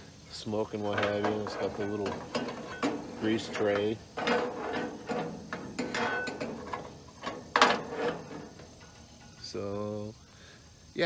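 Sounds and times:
metal tray rattling and clicking: 0:00.6 - 0:09.8
metal clank: 0:00.6 - 0:10.0.

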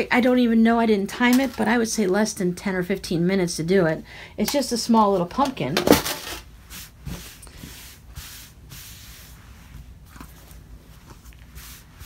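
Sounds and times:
fabric rustling and rubbing: 0:06.4 - 0:12.0.

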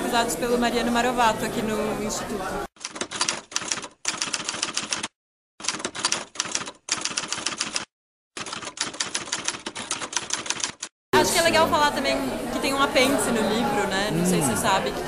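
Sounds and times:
typewriter keys clacking: 0:02.8 - 0:10.9.

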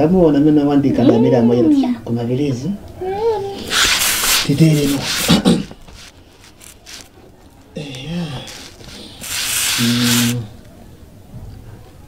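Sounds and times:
brief hiss: 0:07.9 - 0:10.5.

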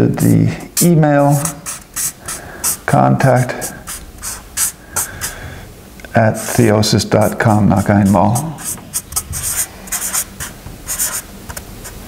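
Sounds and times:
marker pen scratching on paper: 0:00.2 - 0:05.3, 0:06.4 - 0:12.0.

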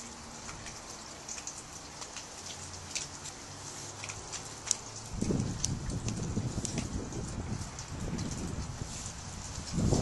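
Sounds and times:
dry tinder crackling and rustling: 0:01.9 - 0:10.0.

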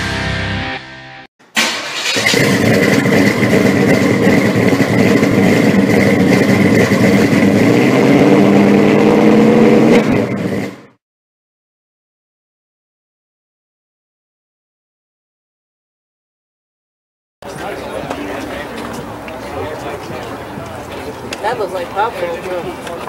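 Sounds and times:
heavy guitar music: 0:00.0 - 0:01.3
car engine starting and running: 0:01.4 - 0:11.0.

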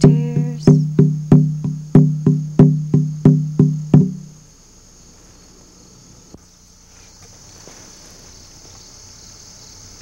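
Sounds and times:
hand drum beating: 0:00.0 - 0:04.4
insects chirring: 0:00.0 - 0:10.0.

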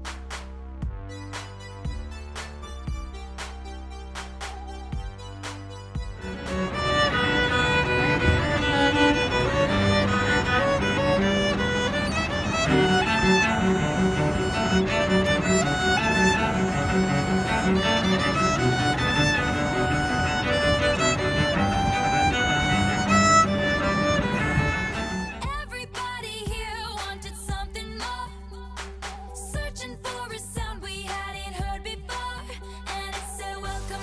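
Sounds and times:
bowed violin melody: 0:05.2 - 0:25.6
sustained cello notes: 0:06.2 - 0:25.4.

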